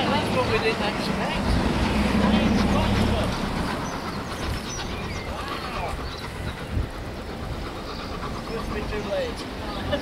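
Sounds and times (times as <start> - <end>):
faint voices: 0.0 - 10.0
steam locomotive rumble: 0.0 - 10.0.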